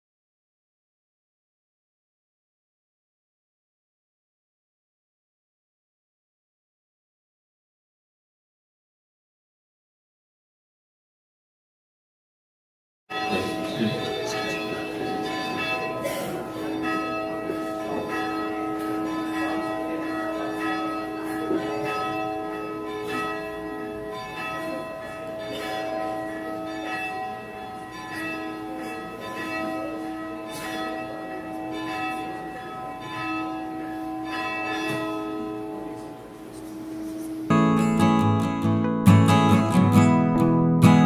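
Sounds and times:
church bells ringing: 0:13.1 - 0:41.0.

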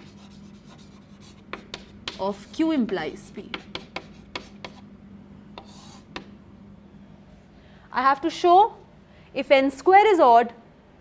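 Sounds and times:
chalk scratching on blackboard: 0:00.0 - 0:02.8, 0:03.4 - 0:04.9, 0:05.6 - 0:06.2
chalk tapping on blackboard: 0:00.0 - 0:04.8, 0:05.6 - 0:06.3.

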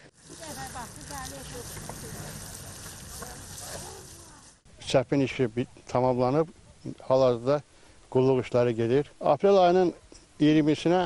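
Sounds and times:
water sprinkling onto soil: 0:00.0 - 0:04.6
faint voices: 0:00.3 - 0:04.6.

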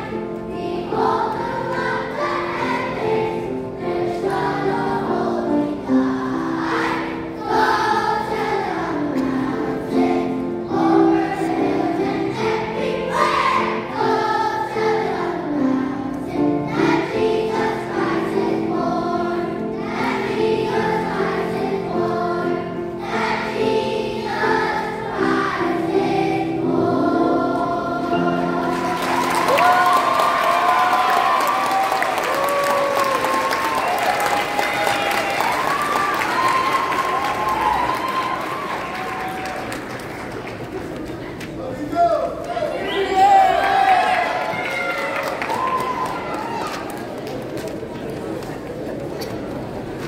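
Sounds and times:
children's choir singing: 0:00.0 - 0:41.3
grand piano: 0:00.0 - 0:41.6
audience applause and cheers: 0:28.6 - 0:41.0, 0:42.4 - 0:48.4.

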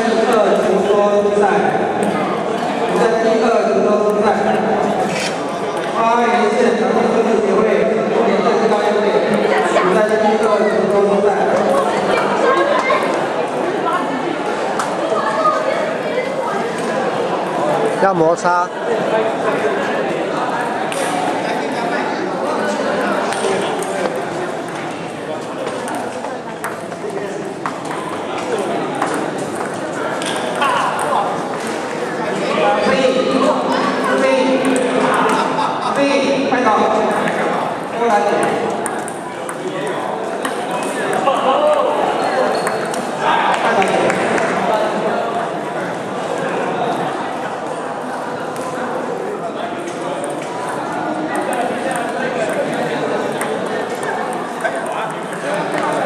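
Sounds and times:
table tennis balls clicking: 0:25.6 - 0:31.8, 0:38.2 - 0:41.8, 0:49.9 - 0:56.0.

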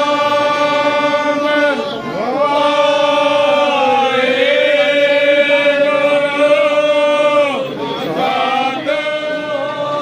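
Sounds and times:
devotional chanting: 0:00.0 - 0:10.0.

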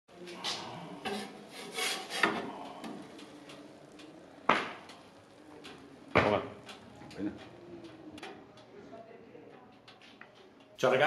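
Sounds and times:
metal peel scraping on stone: 0:01.0 - 0:02.4.

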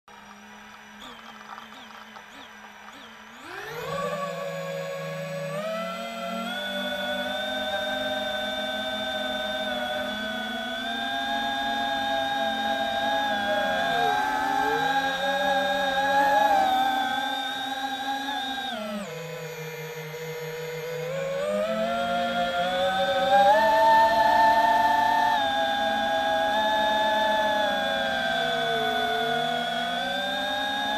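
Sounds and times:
quadcopter motors whining: 0:00.1 - 0:30.9.

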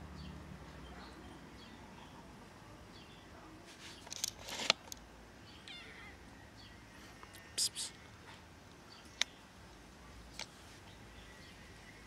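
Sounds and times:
brief rustle: 0:03.6 - 0:05.0.

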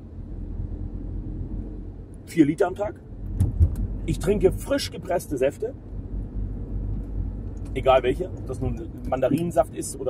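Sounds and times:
low rumble of road and engine: 0:00.0 - 0:10.0.

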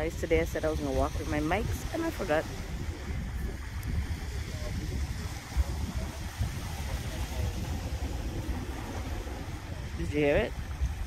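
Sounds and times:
waves rolling pebbles: 0:00.0 - 0:11.0.

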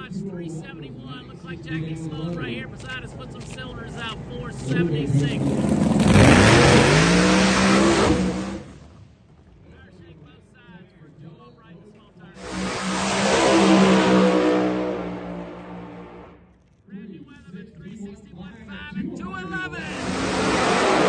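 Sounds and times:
drag race car at full throttle: 0:00.0 - 0:09.6, 0:12.3 - 0:16.6, 0:19.5 - 0:21.0.

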